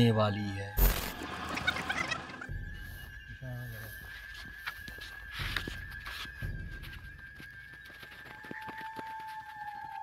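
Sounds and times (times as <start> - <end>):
birds calling: 0.0 - 7.3.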